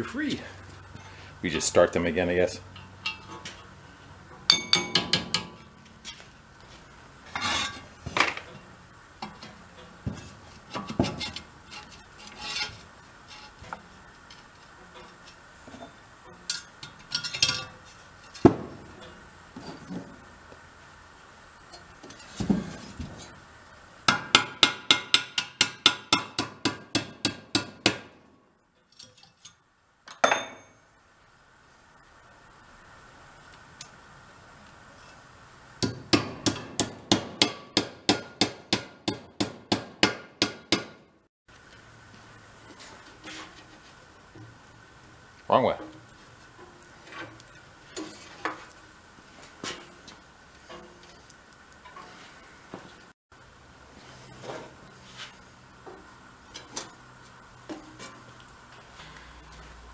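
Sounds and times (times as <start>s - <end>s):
hammer tapping on steel: 4.5s - 5.6s, 24.1s - 28.1s, 35.8s - 41.0s.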